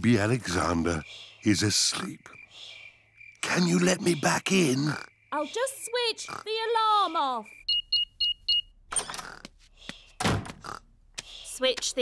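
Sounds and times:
door shutting thud: 10.2 - 10.6.

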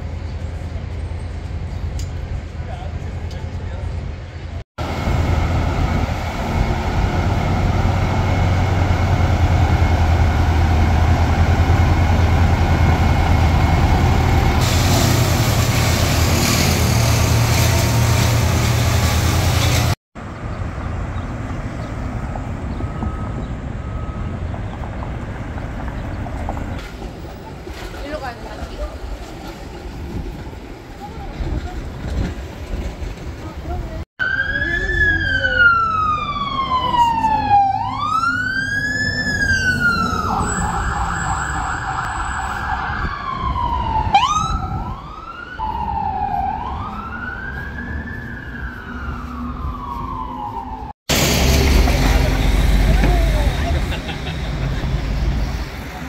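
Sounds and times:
trucks idling: 0.0 - 20.0, 51.1 - 56.0
fire truck siren wailing: 34.2 - 53.8.

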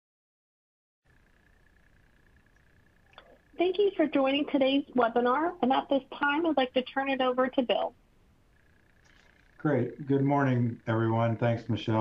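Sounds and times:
faint recording hiss: 1.1 - 12.0
thin steady high tone: 1.1 - 12.0.

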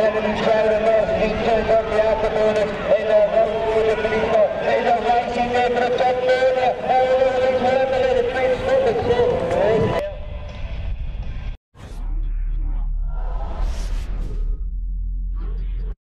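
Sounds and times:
man talking excitedly: 0.0 - 10.2.

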